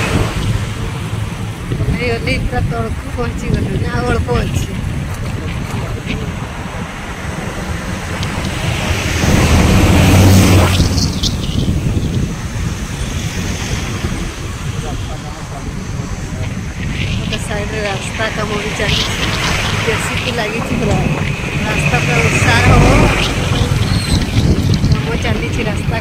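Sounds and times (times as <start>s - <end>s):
low rumble: 0.0s - 26.0s
vehicle road noise: 0.0s - 26.0s
wind buffeting microphone: 0.0s - 26.0s.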